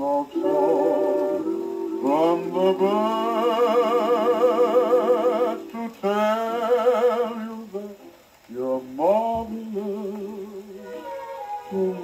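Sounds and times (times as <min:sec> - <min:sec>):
old phonograph record music: 0:00.0 - 0:12.0.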